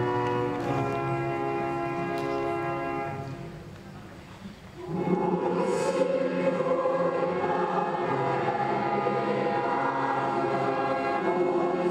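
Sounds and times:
choir-like voices holding chords: 4.8s - 11.9s.

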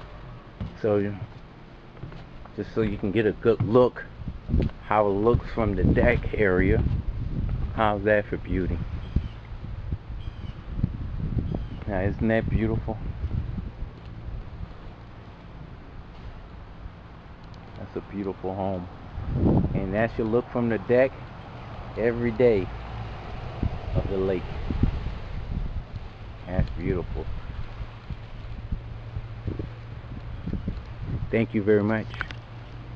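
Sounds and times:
soft bumps: 0.6s - 3.9s
wind on microphone: 2.1s - 17.0s, 17.8s - 32.9s.

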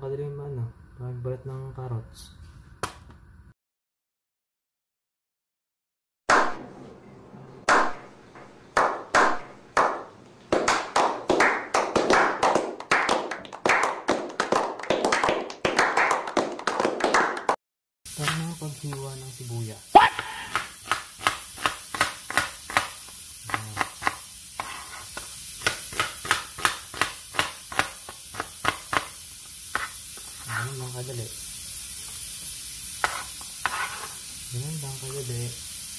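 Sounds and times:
sharp claps: 2.8s - 3.1s, 6.3s - 6.6s, 7.7s - 8.1s, 8.8s - 17.6s
knife tapping cutting board: 18.2s - 19.1s, 20.1s - 22.9s, 23.5s - 29.1s, 29.7s - 29.9s, 33.0s - 33.9s.

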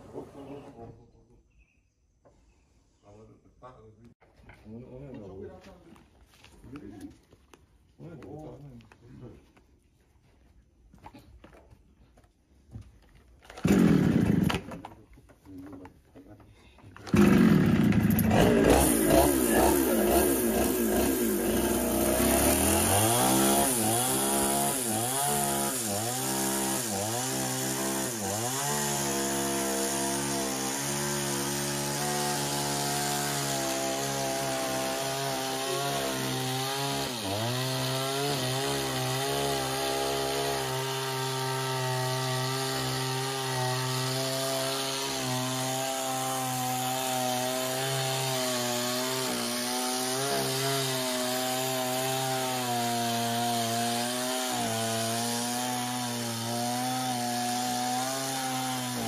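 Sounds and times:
chainsaw running: 13.1s - 15.0s, 17.0s - 59.0s.

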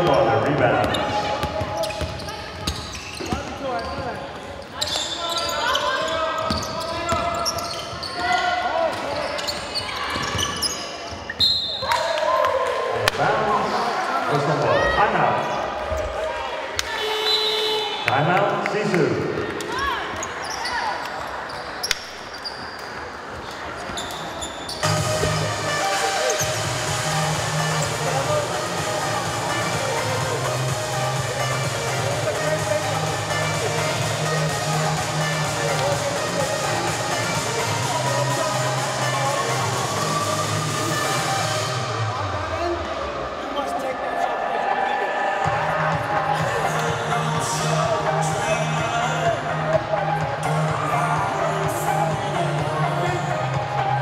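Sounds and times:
players calling out: 0.0s - 22.9s, 23.7s - 54.0s
sharp whistle blast: 11.4s - 12.0s, 17.0s - 18.0s
music with bass beat over speakers: 24.8s - 42.1s, 45.5s - 54.0s.

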